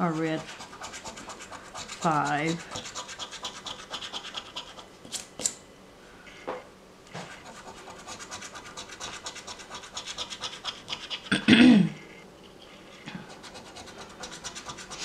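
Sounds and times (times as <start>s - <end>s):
coin scratching lottery ticket: 0.0s - 4.9s, 7.2s - 11.3s, 13.3s - 15.0s.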